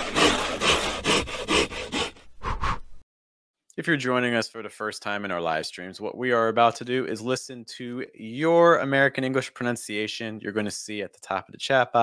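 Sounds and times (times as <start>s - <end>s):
hand saw cutting wood: 0.0s - 2.4s.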